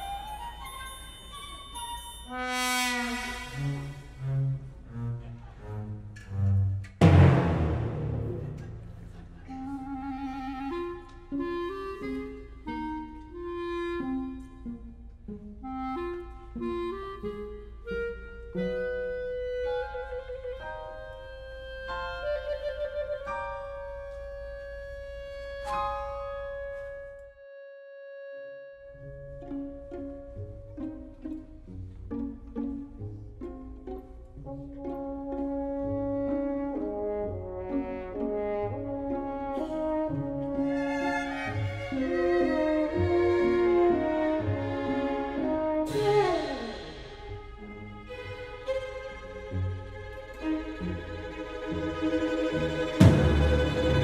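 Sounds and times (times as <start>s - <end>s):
symphony orchestra playing: 2.3s - 27.0s, 28.9s - 54.0s.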